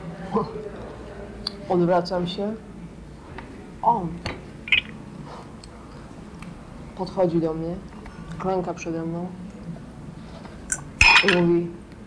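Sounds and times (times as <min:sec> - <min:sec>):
glass clinking against saucer: 0:04.7 - 0:05.0, 0:11.0 - 0:11.5.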